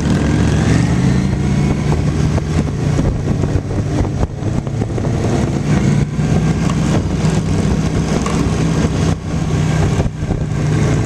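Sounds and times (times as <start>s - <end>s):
engines running at low revs: 0.0s - 11.0s.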